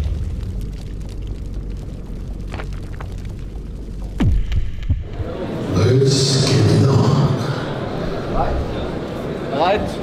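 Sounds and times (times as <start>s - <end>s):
short crackles: 0.0s - 5.2s
low rumble after deep boom: 0.0s - 5.4s.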